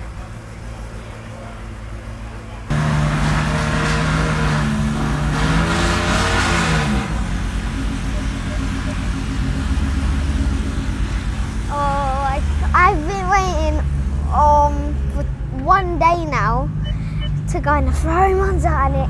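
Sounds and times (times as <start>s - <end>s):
car engine revving and idling: 0.0s - 19.0s.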